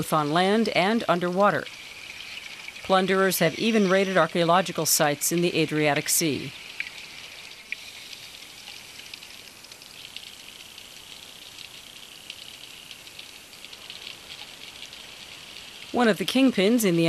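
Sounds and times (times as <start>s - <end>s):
faint crackles and clicks: 6.5s - 16.0s
underwater fizzing hiss: 6.6s - 10.4s.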